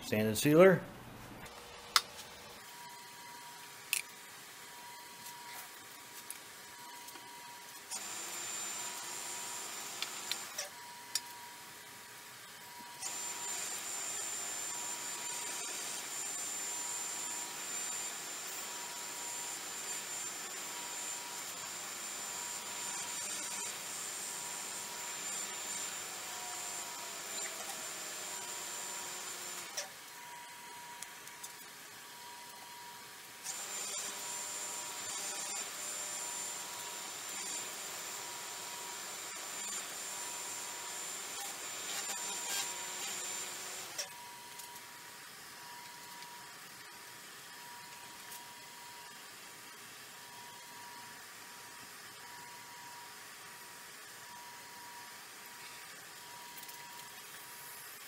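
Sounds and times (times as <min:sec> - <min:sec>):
wood lathe whine: 0:08.0 - 0:11.3, 0:13.0 - 0:29.8, 0:33.5 - 0:44.7.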